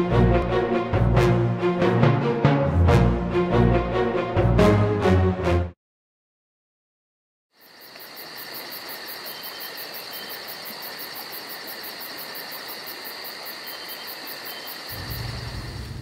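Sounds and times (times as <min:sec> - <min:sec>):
insects chirring: 0:07.5 - 0:16.0
fast pulsing insect trill: 0:07.6 - 0:16.0.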